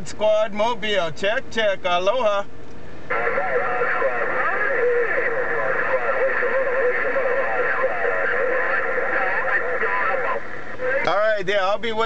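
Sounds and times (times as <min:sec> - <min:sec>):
radio static hiss: 0:01.6 - 0:12.0
tinny radio speech: 0:03.1 - 0:12.0.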